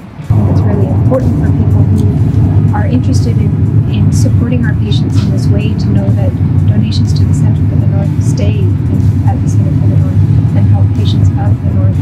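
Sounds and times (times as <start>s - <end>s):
loud steady low rumble: 0.0s - 12.0s
woman speaking: 0.5s - 12.0s.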